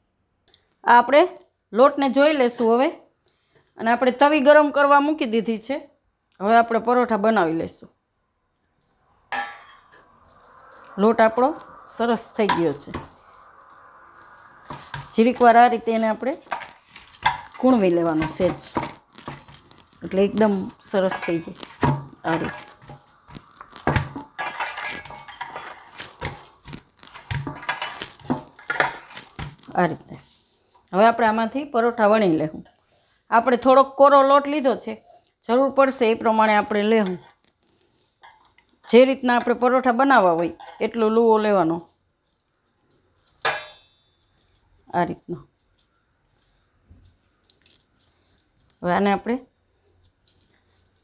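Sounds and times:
person speaking: 10.8 - 13.2, 14.9 - 16.8, 17.5 - 19.0, 19.9 - 22.7, 29.6 - 30.3
clink against metal bowl: 43.4 - 44.2.

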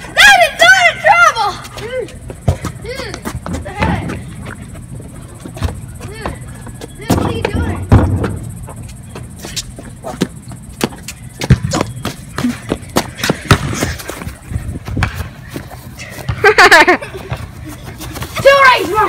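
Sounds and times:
basketball bouncing on concrete: 1.7 - 4.6, 5.4 - 9.3, 10.1 - 14.3.

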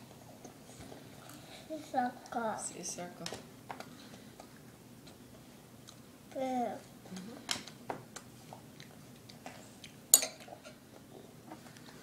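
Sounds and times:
metal spoon clinking on bowl: 10.1 - 10.5.

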